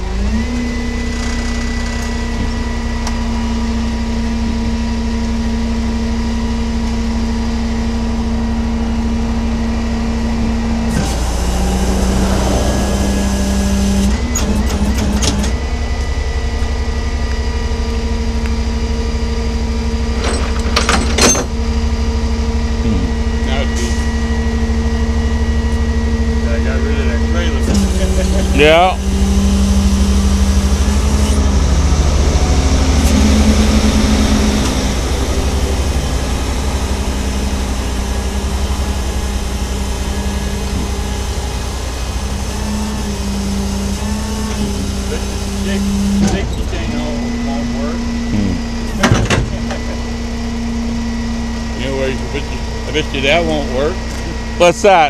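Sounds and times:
vehicle engine idling: 0.0 - 20.2, 21.5 - 55.0.

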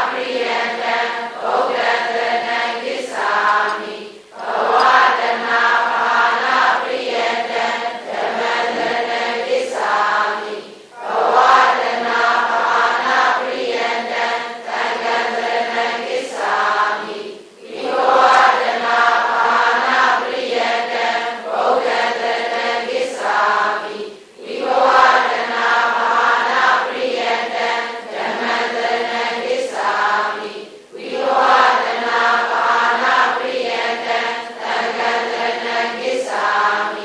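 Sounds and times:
voices chanting in unison: 0.0 - 37.0.

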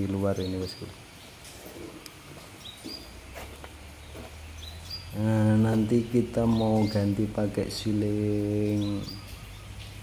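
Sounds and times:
faint scattered clicks: 1.4 - 2.9
high bird chirps: 2.1 - 3.2, 4.0 - 7.2, 8.6 - 10.0.

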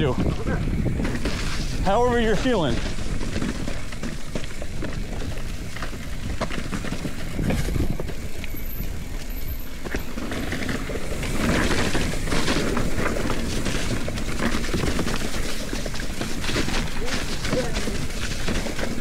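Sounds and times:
bike rattling: 0.0 - 19.0
bike tyre noise: 0.0 - 19.0
tyres crunching dry leaves: 0.0 - 19.0
wind rumble on camera: 0.0 - 19.0.

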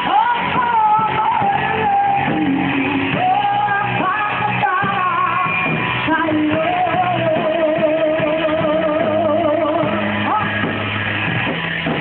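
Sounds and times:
woman singing into a microphone: 0.0 - 10.8
live band playing: 0.0 - 12.0.

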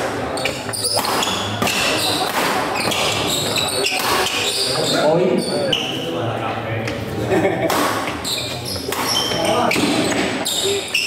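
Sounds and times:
rackets hitting shuttlecock: 0.0 - 4.6, 7.6 - 10.8
players' voices and calls: 0.0 - 11.0.

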